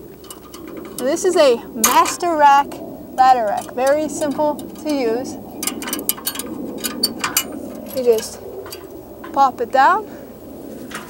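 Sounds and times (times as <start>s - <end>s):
metal clicks and clinks: 0.2s - 9.5s.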